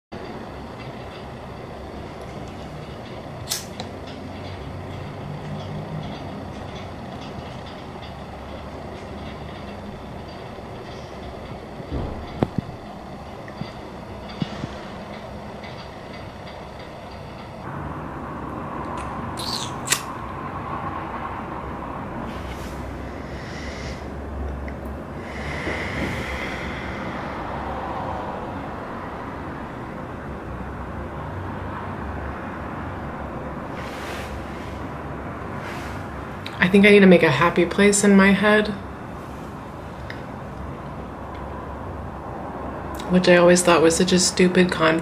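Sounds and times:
low rumble of vehicle noise: 0:00.1 - 0:45.0
sharp clicks and knocks: 0:02.2 - 0:17.6.

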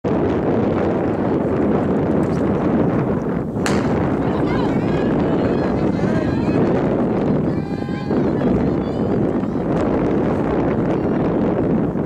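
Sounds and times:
wind buffeting microphone: 0:00.0 - 0:12.0
starter's pistol shot: 0:03.6 - 0:04.0.

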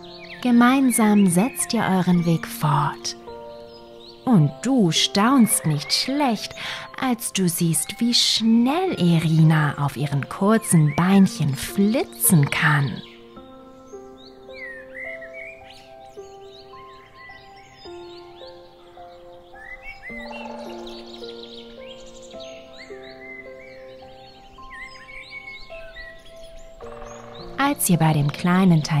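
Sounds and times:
birds chirping: 0:00.0 - 0:29.0
calm background music: 0:00.0 - 0:29.0.

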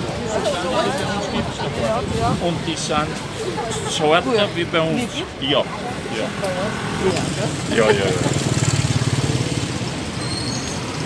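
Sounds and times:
voices talking: 0:00.0 - 0:09.8.

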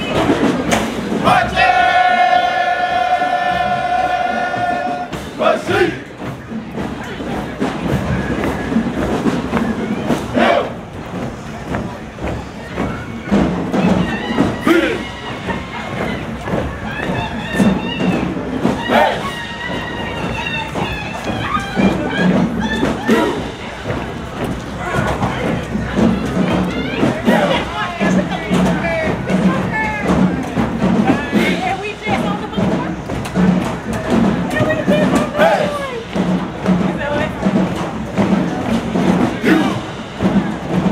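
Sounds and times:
crowd voices: 0:00.0 - 0:40.9
low thumping beat: 0:00.0 - 0:40.9
marching band chanting and singing: 0:00.0 - 0:40.9.

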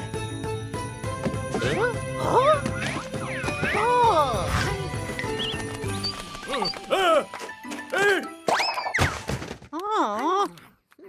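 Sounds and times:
light background music: 0:00.0 - 0:09.0.

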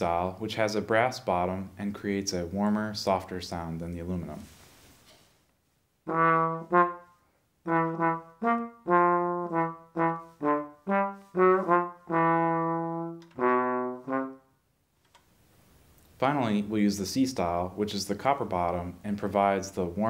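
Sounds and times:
muted trombone phrase: 0:06.1 - 0:07.0, 0:07.7 - 0:14.4.

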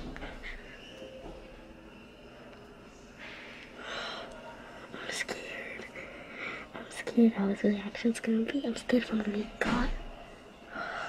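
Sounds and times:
person whispering: 0:04.2 - 0:06.1.

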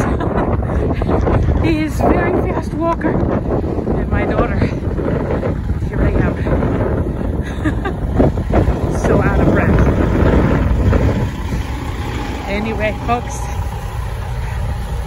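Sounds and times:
diesel trucks running: 0:00.0 - 0:15.0
wind on microphone: 0:00.0 - 0:15.0.

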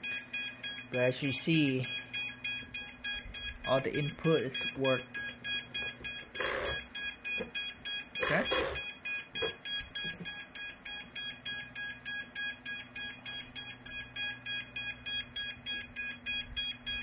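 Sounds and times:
quadcopter beeping rapidly: 0:00.0 - 0:17.0.

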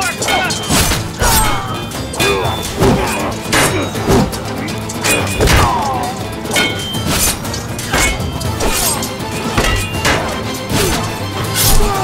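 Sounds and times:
dramatic orchestral music: 0:00.0 - 0:12.0
metal sword clashes: 0:00.0 - 0:12.0
shouts and grunts: 0:10.8 - 0:12.0.

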